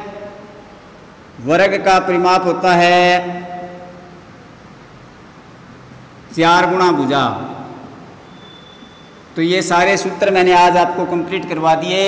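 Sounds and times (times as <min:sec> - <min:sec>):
room noise: 0:00.0 - 0:12.0
man's voice: 0:06.4 - 0:07.8, 0:09.4 - 0:12.0.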